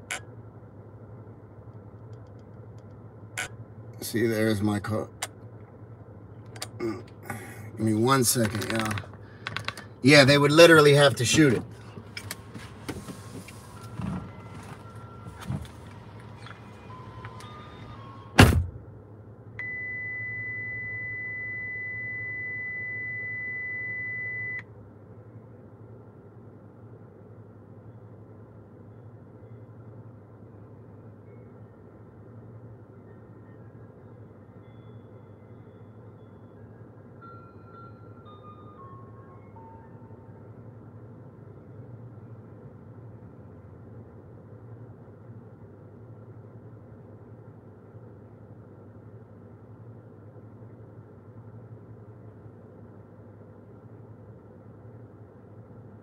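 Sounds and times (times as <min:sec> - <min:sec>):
car engine idling hum: 0:00.0 - 0:56.0
faint short falling beeps: 0:13.2 - 0:18.4, 0:19.6 - 0:24.7.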